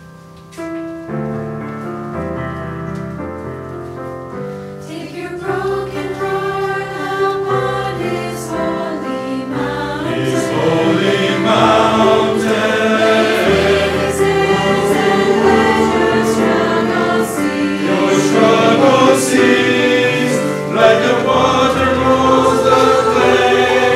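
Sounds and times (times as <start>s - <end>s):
mixed choir singing a hymn: 4.8s - 23.9s.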